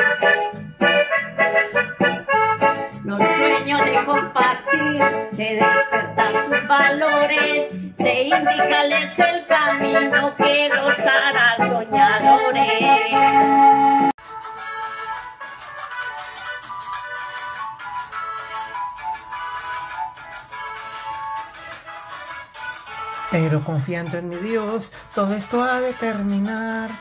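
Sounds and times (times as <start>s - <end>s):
lively accordion music: 0.0s - 27.0s.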